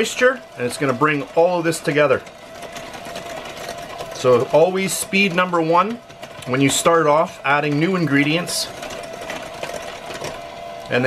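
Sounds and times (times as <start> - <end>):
electric hand mixer whirring: 0.0 - 11.0.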